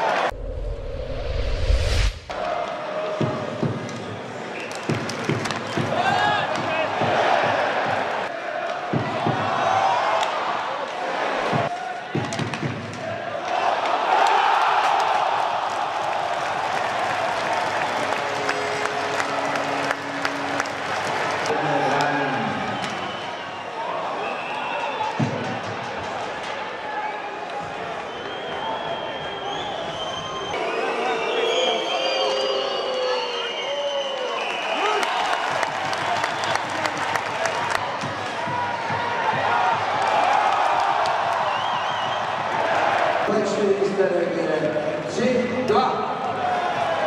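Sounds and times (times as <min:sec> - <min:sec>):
arena crowd noise: 0:00.0 - 0:00.4, 0:02.3 - 0:47.0
deep bass rumble: 0:00.3 - 0:02.3
rising whoosh: 0:00.3 - 0:02.5
hockey sticks and puck knocks: 0:04.7 - 0:05.9.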